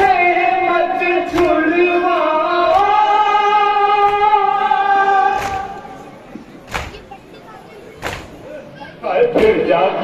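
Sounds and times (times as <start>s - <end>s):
men chanting in unison: 0.0s - 6.0s.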